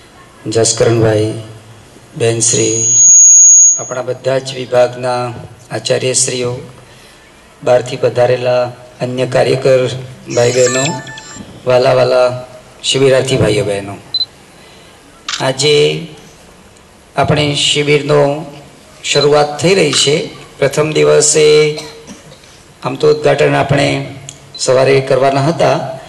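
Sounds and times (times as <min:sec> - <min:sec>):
man speaking into microphone: 0:00.4 - 0:01.6, 0:02.2 - 0:02.9, 0:03.8 - 0:06.8, 0:07.6 - 0:14.1, 0:15.4 - 0:16.3, 0:17.2 - 0:22.0, 0:22.8 - 0:26.0
man speaking: 0:02.2 - 0:03.0, 0:07.7 - 0:14.1
microphone feedback whistle: 0:02.5 - 0:04.0, 0:10.3 - 0:11.7
short high beep: 0:02.5 - 0:04.0, 0:10.3 - 0:11.6.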